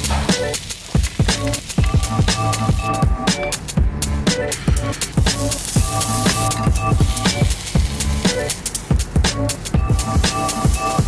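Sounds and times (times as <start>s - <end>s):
electronic beat music: 0.0s - 11.0s.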